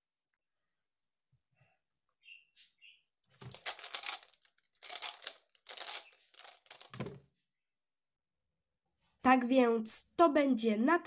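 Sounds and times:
puzzle cube pieces clacking: 0:03.4 - 0:07.2.

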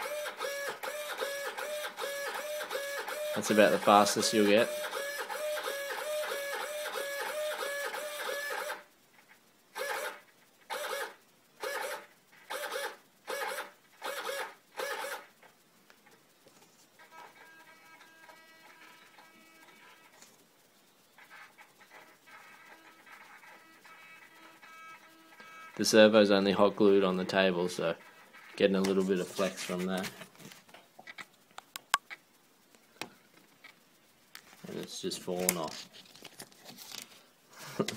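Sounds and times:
faint steady hum: 0:00.0 - 0:37.9
servo motor whining: 0:09.8 - 0:15.2.

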